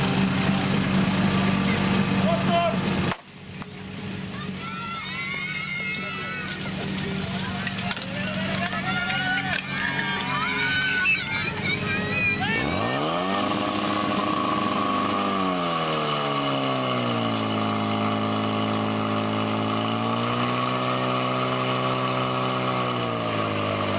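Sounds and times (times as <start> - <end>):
fire pump engine revving: 0.0 - 23.9
people shouting: 4.3 - 6.8, 7.4 - 13.6.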